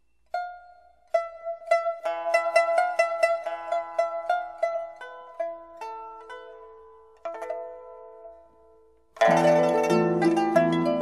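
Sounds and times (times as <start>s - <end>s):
pipa plucked notes: 0.3s - 11.0s.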